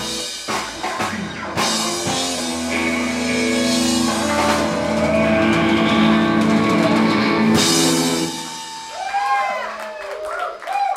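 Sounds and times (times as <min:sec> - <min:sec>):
sustained distorted guitar chord: 0:01.6 - 0:08.6.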